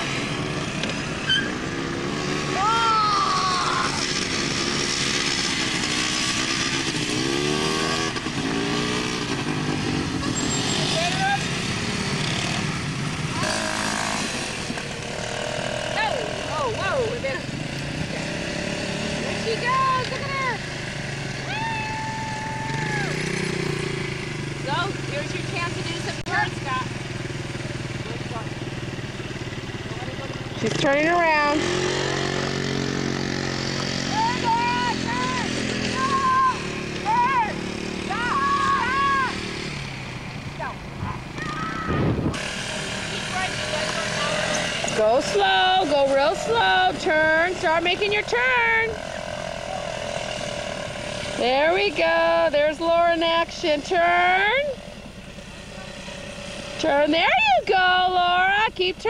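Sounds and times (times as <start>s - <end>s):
quad engines revving: 0.0s - 59.0s.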